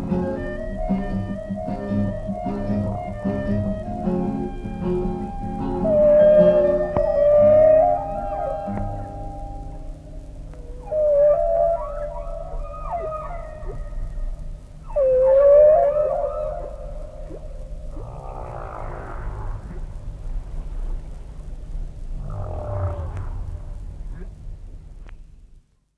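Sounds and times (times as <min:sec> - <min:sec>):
whale moaning calls: 0:00.4 - 0:21.0, 0:22.0 - 0:24.5
whale grating calls: 0:05.7 - 0:21.0, 0:22.0 - 0:24.5.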